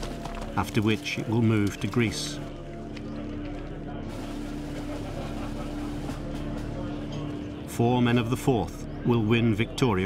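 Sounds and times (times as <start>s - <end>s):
noisy background haze: 2.7s - 7.8s.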